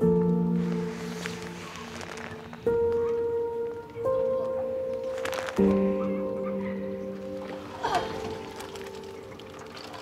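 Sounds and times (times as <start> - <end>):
water pouring and dripping from net: 0.9 - 3.0, 4.9 - 5.9, 7.3 - 10.0.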